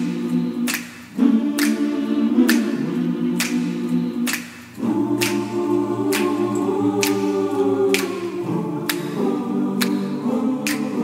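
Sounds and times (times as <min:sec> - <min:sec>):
choir singing a cappella: 0:00.0 - 0:11.0
finger snaps: 0:00.6 - 0:02.8, 0:03.4 - 0:09.2, 0:09.8 - 0:11.0.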